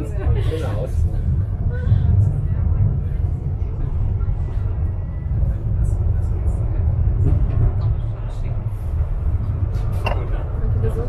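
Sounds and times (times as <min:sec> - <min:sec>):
funicular car rumbling on rails: 0:00.0 - 0:11.0.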